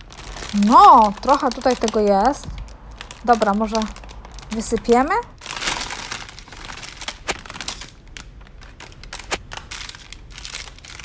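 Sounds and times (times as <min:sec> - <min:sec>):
plastic packets crinkling: 0:00.0 - 0:11.0.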